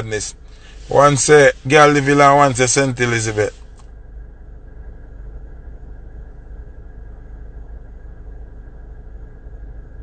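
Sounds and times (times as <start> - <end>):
low rumble with faint hiss: 0.0 - 10.0.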